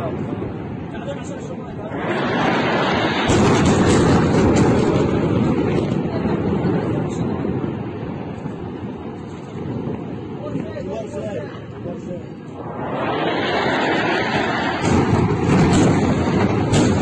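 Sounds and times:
large explosion with rumble: 0:00.0 - 0:10.4, 0:12.4 - 0:17.0.

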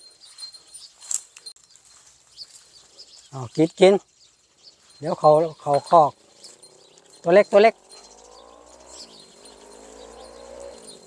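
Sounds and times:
cattle grazing rustling and crunching: 0:00.0 - 0:11.0.

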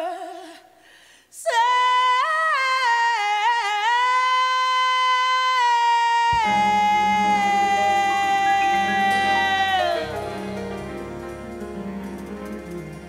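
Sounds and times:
woman singing sustained note: 0:06.2 - 0:11.0
band playing low notes: 0:06.4 - 0:13.0.

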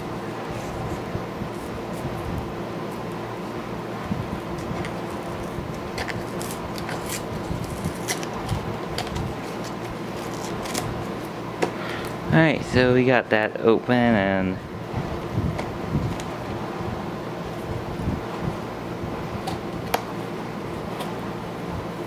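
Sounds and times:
steady background hum: 0:00.0 - 0:22.0
cellophane wrapper crinkling: 0:04.6 - 0:11.2.

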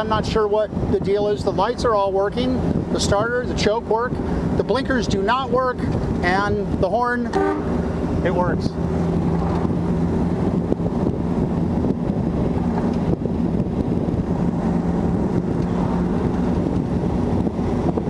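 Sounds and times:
tyre and road noise: 0:00.0 - 0:18.0
wind buffeting microphone: 0:00.0 - 0:18.0
car engine running: 0:00.7 - 0:18.0.

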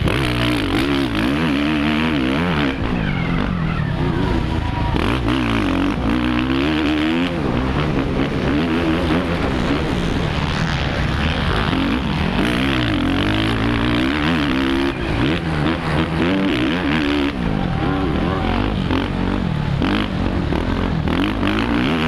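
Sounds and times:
motorbike engine revving: 0:00.0 - 0:22.0.

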